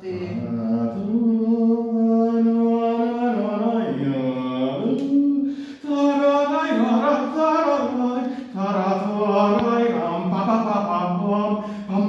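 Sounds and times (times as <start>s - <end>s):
man singing wordless melody: 0.0s - 12.0s.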